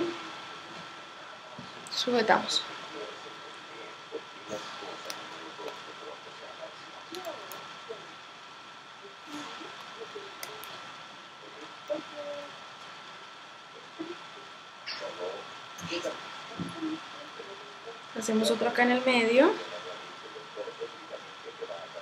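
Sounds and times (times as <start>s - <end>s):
steady hiss: 0.0s - 22.0s
faint murmured voice: 2.5s - 18.8s, 19.4s - 22.0s.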